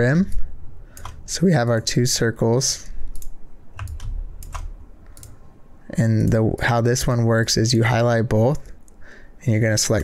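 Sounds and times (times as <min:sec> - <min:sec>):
keyboard and mouse clicks: 0:00.3 - 0:01.8, 0:03.1 - 0:05.4.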